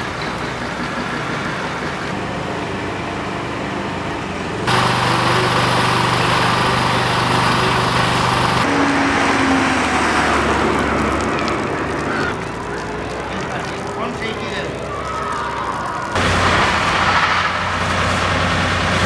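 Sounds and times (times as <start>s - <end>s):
engine hum: 0.0s - 19.0s
car passing: 4.4s - 19.0s
loud hiss: 4.7s - 8.7s.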